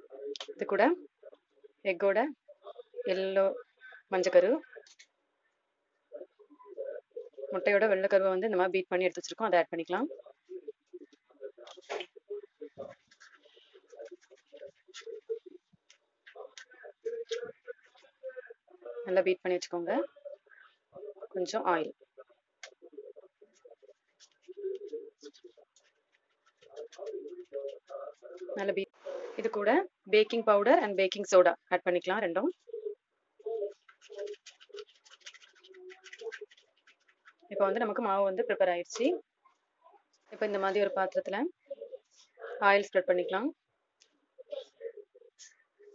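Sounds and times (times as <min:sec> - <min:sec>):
person talking: 0:00.0 - 0:05.0, 0:06.1 - 0:15.6, 0:16.3 - 0:25.8, 0:26.4 - 0:36.6, 0:37.4 - 0:39.3, 0:40.3 - 0:43.6, 0:44.4 - 0:45.9.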